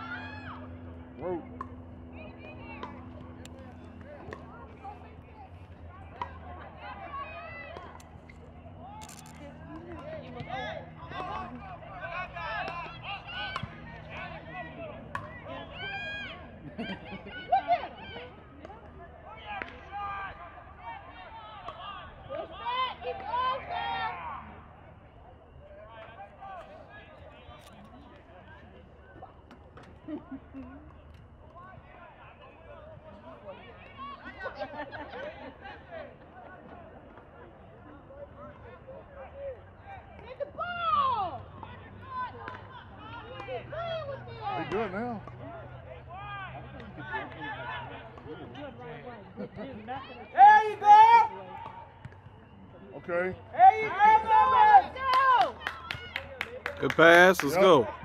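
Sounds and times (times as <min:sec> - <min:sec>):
people shouting and calling: 0:00.0 - 0:08.0, 0:10.0 - 0:18.4, 0:19.3 - 0:24.6, 0:50.2 - 0:51.7, 0:53.5 - 0:56.0, 0:56.8 - 0:58.0.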